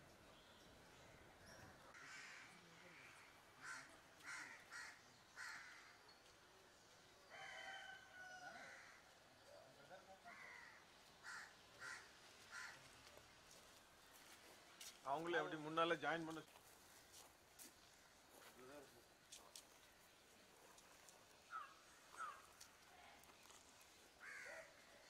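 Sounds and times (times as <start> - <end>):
faint bird calls: 21.4 - 22.7, 24.2 - 25.0.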